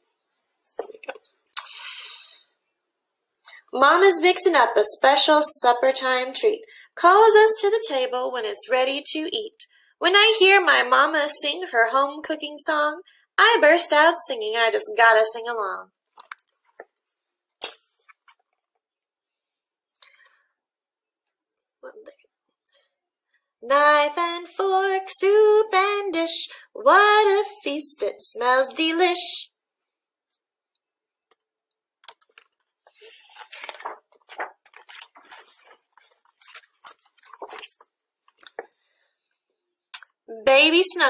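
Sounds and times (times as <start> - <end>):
book page turning: 32.0 - 38.8.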